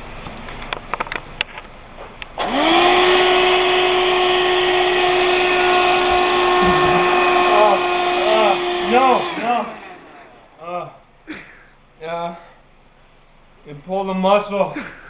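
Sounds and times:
vacuum cleaner motor whining: 2.4 - 10.6.

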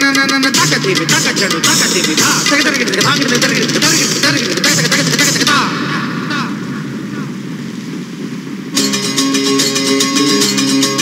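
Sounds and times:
rushing wind with low rumble: 2.7 - 10.5
music with strummed guitar and cymbal: 8.8 - 11.0.

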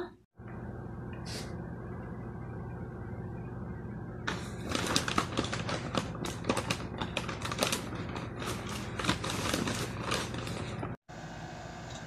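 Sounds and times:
rapid clicks and crackles: 4.3 - 11.0.

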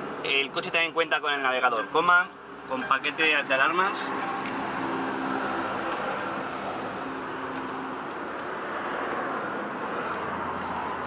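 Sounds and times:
vehicle hum and hiss: 2.3 - 11.0.

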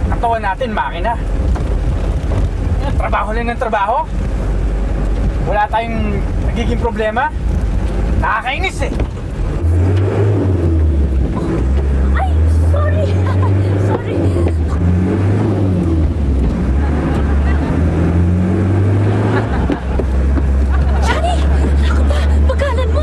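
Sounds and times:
bus engine running hard: 0.0 - 23.0
passengers talking: 11.2 - 23.0.

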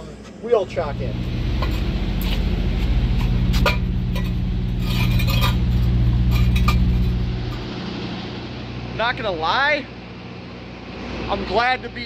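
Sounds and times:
truck engine idling: 0.6 - 11.0.

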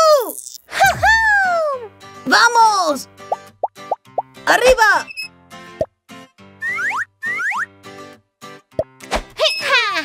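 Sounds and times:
children's cartoon music: 1.0 - 10.0
rising whistle-like slides: 6.6 - 7.7.

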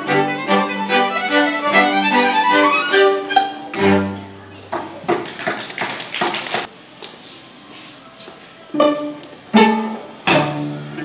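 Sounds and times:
string quintet short percussive notes: 0.0 - 4.4, 8.7 - 11.0.

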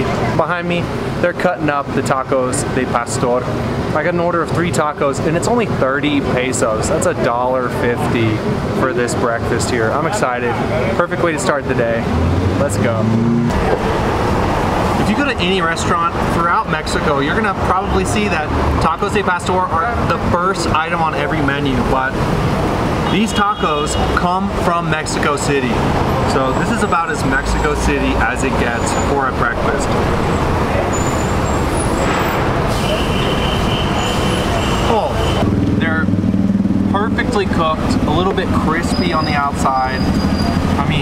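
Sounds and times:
street traffic passing: 0.0 - 41.0
vehicle engine and road noise: 0.0 - 41.0.

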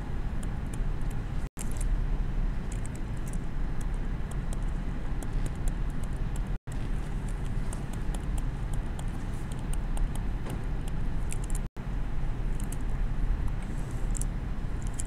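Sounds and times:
low room rumble: 0.0 - 15.0.

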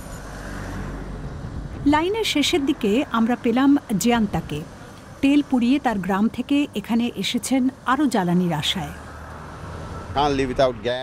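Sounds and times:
motor vehicle rumble: 0.0 - 11.0.

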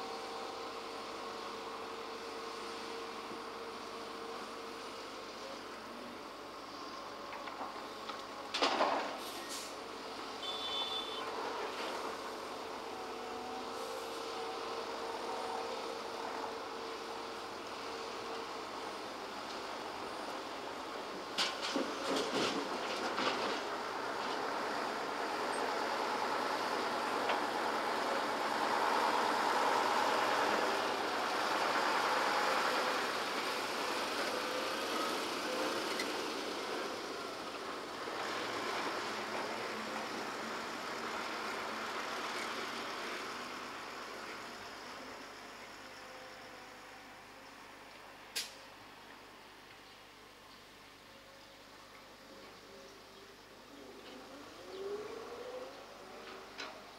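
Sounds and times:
dump truck driving past: 0.0 - 47.3
diesel engine noise: 0.0 - 56.9.

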